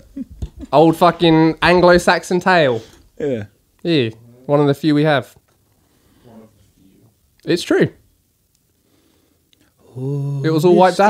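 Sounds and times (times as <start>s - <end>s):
soft breath: 5.8s - 6.9s, 8.7s - 10.0s
man speaking: 10.0s - 11.0s.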